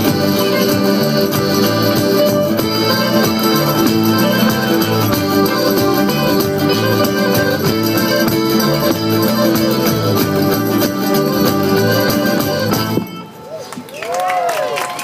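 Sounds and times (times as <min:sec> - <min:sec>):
electric bass: 0:00.0 - 0:13.1
frame drums: 0:00.0 - 0:13.2
folk band playing dance tune: 0:00.0 - 0:13.8.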